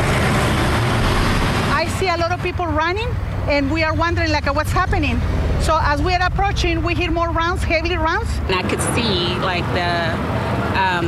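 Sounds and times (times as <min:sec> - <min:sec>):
street traffic noise: 0:00.0 - 0:11.0
vehicle engine rumble: 0:00.0 - 0:11.0
woman speaking: 0:01.7 - 0:11.0.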